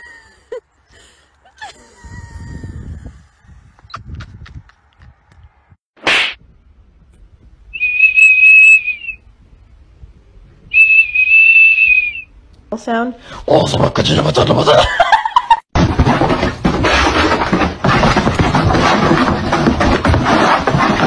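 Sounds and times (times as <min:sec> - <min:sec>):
high-pitched whistle blasts: 0:07.7 - 0:09.3, 0:10.7 - 0:12.3.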